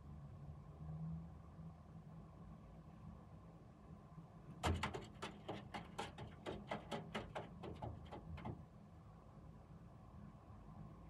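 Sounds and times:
faint traffic hum: 0.0s - 11.0s
sharp knocks: 4.6s - 8.6s.

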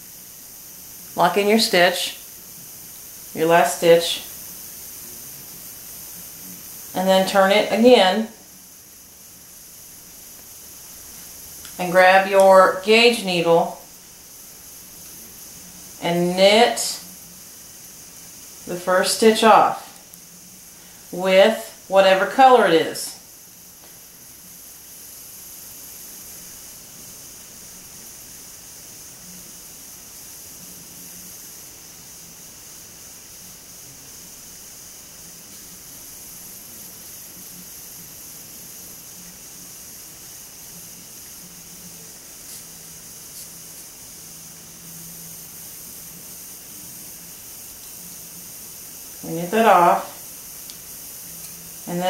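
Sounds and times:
room tone hiss: 0.0s - 52.0s
faint ticks: 50.6s - 51.6s.

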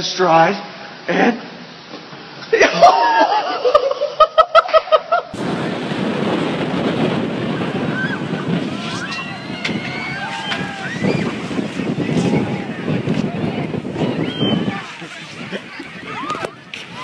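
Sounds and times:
laughter: 2.5s - 5.4s
wind buffeting microphone: 5.3s - 17.0s
high voices shouting: 7.4s - 17.0s.

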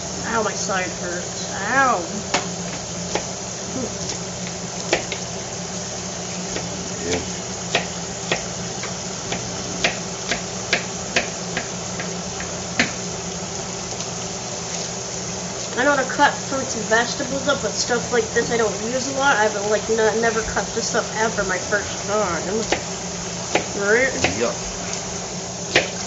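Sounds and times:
knife chopping on cutting board: 25.7s - 26.0s.

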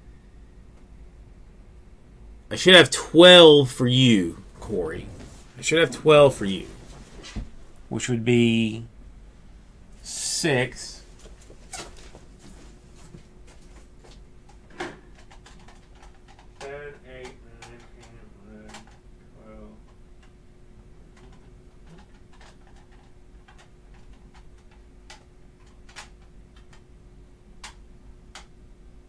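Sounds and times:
electrical hum: 0.0s - 29.0s
man mumbling and humming: 2.5s - 6.7s.

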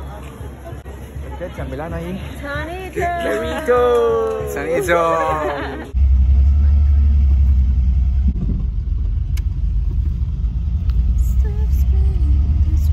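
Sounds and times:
car engine and road noise: 5.9s - 12.9s.

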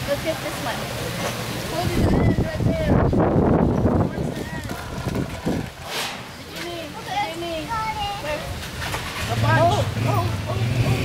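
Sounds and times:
children chattering and calling: 0.1s - 3.2s, 3.8s - 11.0s.

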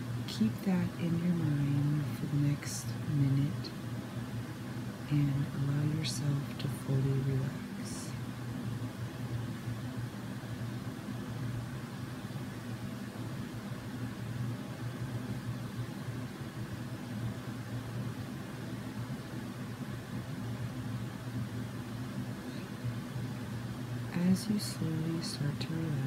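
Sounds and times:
low hum with faint hiss: 0.0s - 26.0s.

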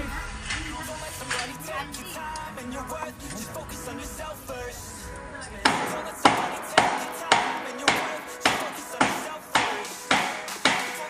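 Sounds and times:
snare or clap beat: 5.7s - 11.0s.

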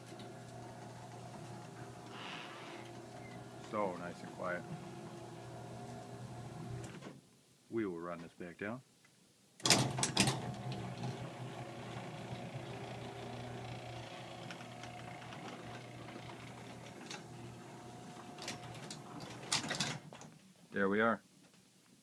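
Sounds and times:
garage door opener motor hum: 0.0s - 7.1s, 9.6s - 20.1s
click and clunks: 18.2s - 20.3s.

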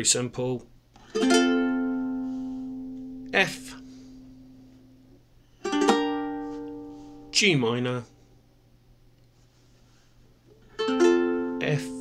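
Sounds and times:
ukulele chord strumming: 1.0s - 7.4s, 10.7s - 12.0s.

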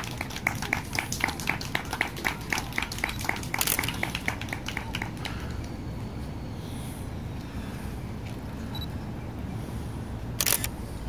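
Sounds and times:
low outdoor rumble: 0.0s - 11.0s
sharp clicks: 10.4s - 10.7s.

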